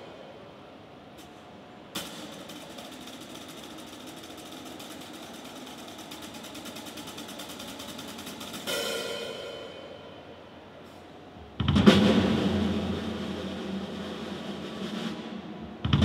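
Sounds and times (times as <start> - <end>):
snare drum roll: 2.0 - 9.7, 11.6 - 16.0
cymbal ringing: 2.0 - 10.6
loud drum hit: 11.6 - 16.0.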